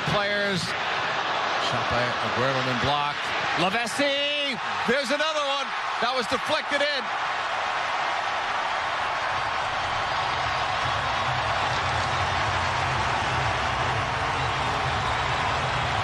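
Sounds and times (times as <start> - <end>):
stadium crowd cheering: 0.0 - 16.0.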